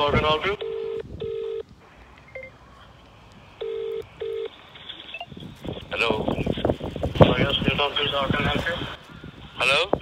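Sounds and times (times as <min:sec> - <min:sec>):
telephone ringback tone: 0:00.6 - 0:01.6, 0:02.3 - 0:02.6, 0:03.6 - 0:04.5.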